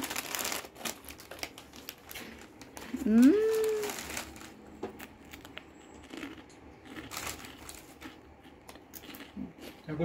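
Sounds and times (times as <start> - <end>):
biscuits being chewed: 0.0 - 10.0.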